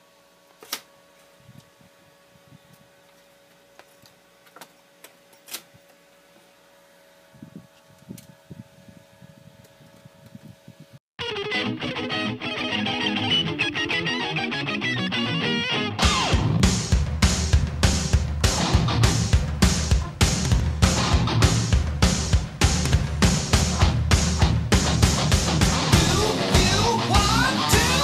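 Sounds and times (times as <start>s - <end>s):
rock music with electric guitar: 11.2s - 28.0s.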